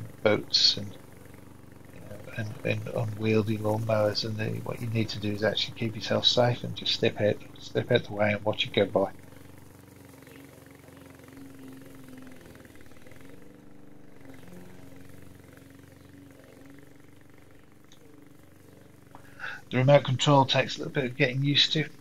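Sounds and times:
mower engine running: 0:00.0 - 0:22.0.

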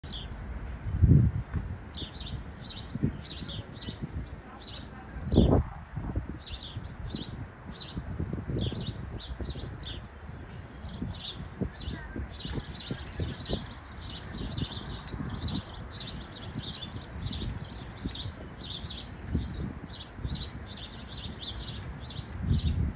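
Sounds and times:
sparrow chirping: 0:00.0 - 0:00.6, 0:01.9 - 0:05.7, 0:06.3 - 0:22.9.

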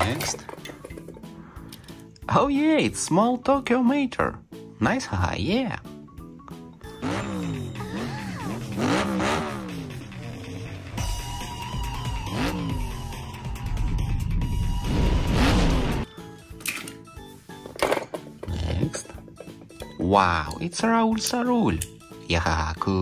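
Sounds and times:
cartoon soundtrack music: 0:04.2 - 0:23.0
cartoon car engines revving: 0:07.0 - 0:13.3.

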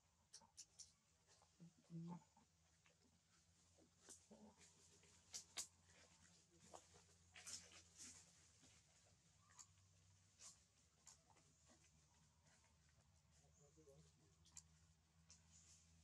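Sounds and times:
faint low hum: 0:00.0 - 0:16.0
soft clicks and rustles: 0:02.7 - 0:16.0.

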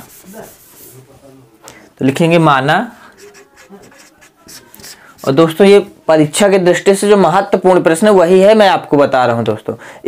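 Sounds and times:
marker pen writing on whiteboard: 0:03.1 - 0:05.7.

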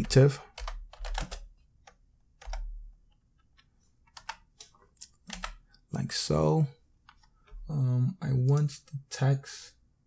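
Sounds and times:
computer keyboard keystrokes: 0:00.0 - 0:02.7, 0:03.4 - 0:05.6.

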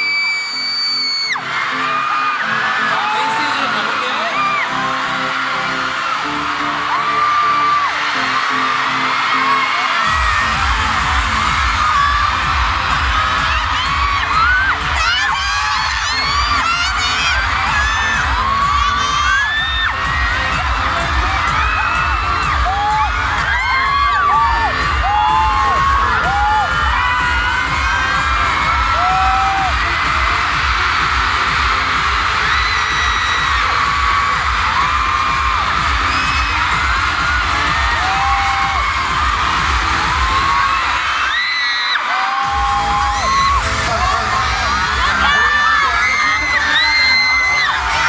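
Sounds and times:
crowd cheering and screaming: 0:00.0 - 0:48.0
pop music with heavy bass beat: 0:01.2 - 0:48.0.

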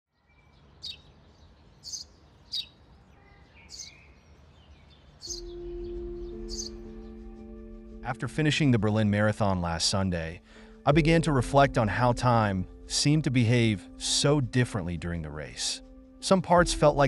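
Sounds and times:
small birds chirping: 0:00.1 - 0:08.0
soft outdoor background: 0:00.1 - 0:17.0
held music tone: 0:05.3 - 0:17.0.

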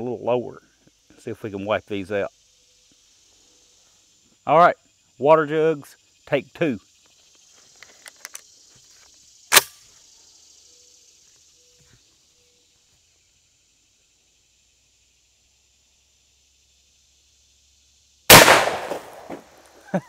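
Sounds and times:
shotgun shot: 0:18.3 - 0:19.5.

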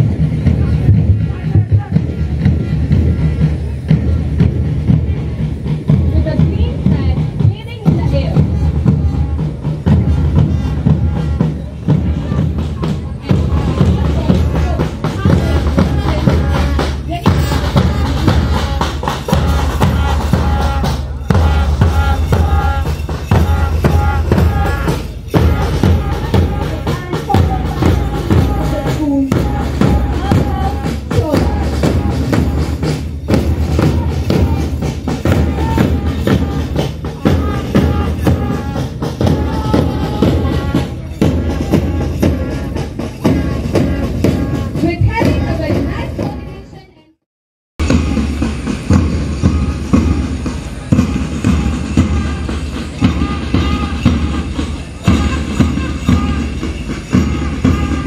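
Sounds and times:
drum band marching music: 0:00.0 - 0:47.2, 0:47.8 - 0:58.0.

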